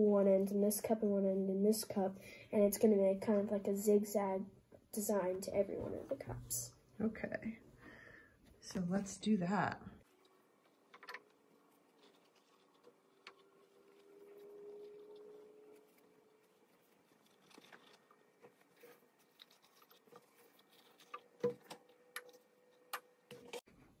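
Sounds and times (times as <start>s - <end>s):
paper rustling: 10.1s - 14.4s, 15.1s - 23.7s.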